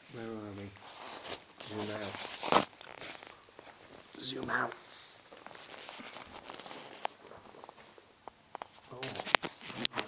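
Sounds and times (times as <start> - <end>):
camera rubbing against fabric: 0.5 - 8.0, 8.6 - 10.0.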